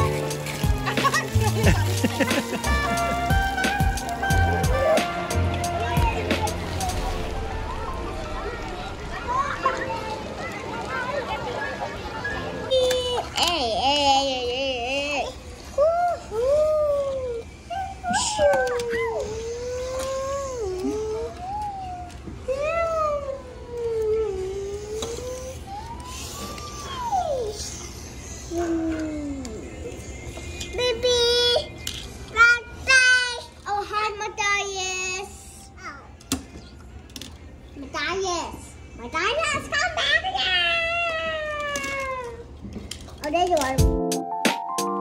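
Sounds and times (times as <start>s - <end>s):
music with a beat: 0.0s - 6.8s, 43.8s - 45.0s
toddler whining: 12.7s - 29.8s, 40.9s - 42.6s
toddler squealing: 24.7s - 28.6s.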